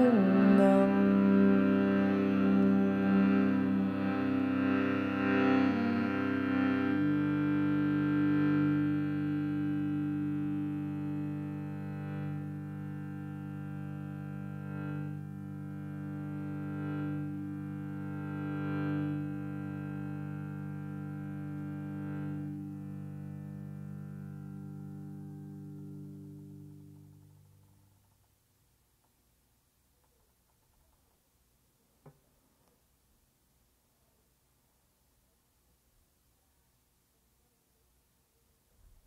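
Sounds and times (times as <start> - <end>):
instrumental drone chord: 0.0 - 27.9.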